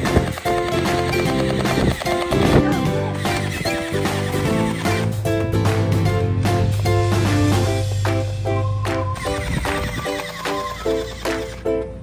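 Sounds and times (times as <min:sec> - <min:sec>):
upbeat music with short chords: 0:00.0 - 0:12.0.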